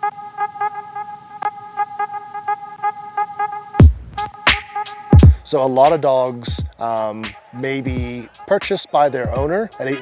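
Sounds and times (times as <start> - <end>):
pulsing buzzy electronic tone: 0.0 - 5.3.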